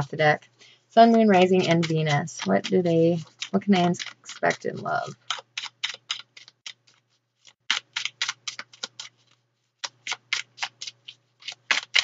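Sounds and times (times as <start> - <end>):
cards being shuffled: 1.0 - 12.0.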